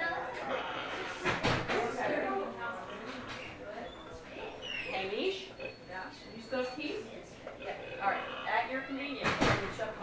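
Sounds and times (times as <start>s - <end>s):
pig squealing and grunting: 0.4s - 1.2s, 7.6s - 8.7s.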